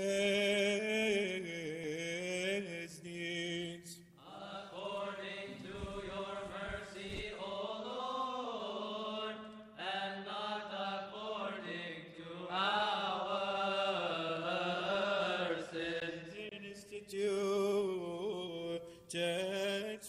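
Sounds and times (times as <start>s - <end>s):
voices chanting in unison: 0.0s - 20.0s.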